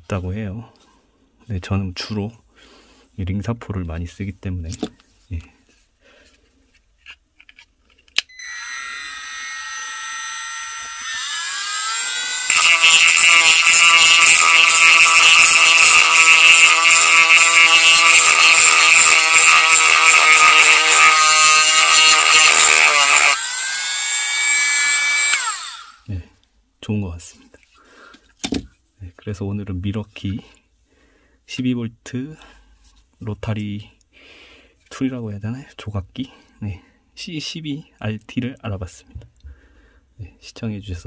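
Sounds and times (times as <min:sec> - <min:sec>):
rotary tool motor whining: 0:08.3 - 0:26.0
sanding band grinding wood: 0:10.6 - 0:23.4.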